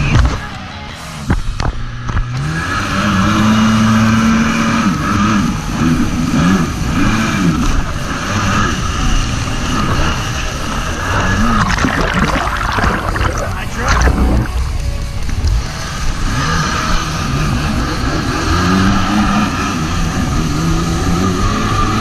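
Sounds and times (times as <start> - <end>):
loud splashing: 11.2 - 14.8.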